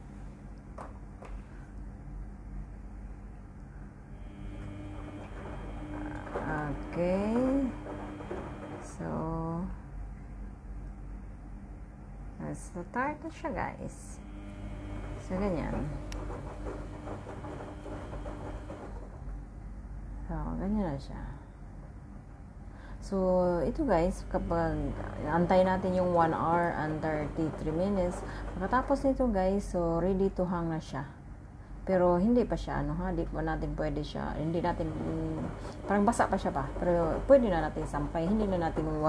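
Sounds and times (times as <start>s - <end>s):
washing machine hum: 0.0s - 39.0s.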